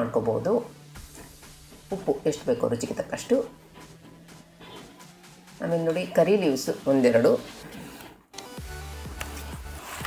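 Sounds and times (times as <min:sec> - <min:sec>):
background music with bass line: 0:00.0 - 0:10.0.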